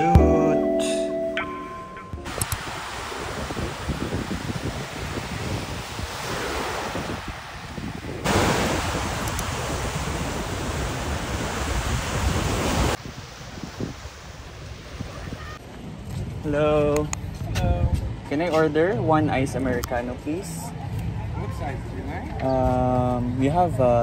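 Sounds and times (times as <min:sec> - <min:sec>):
wind on microphone: 0:02.2 - 0:16.4
small waves breaking on beach: 0:02.3 - 0:15.6.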